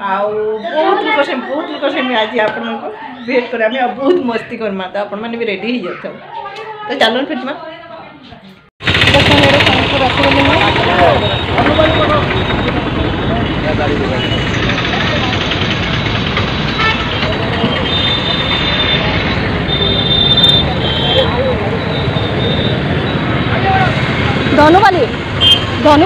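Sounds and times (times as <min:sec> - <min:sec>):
people talking: 0:00.0 - 0:15.8, 0:23.5 - 0:25.2, 0:25.8 - 0:26.0
auto-rickshaw and motorbike engines: 0:08.8 - 0:26.0
short horn toots: 0:25.4 - 0:25.7.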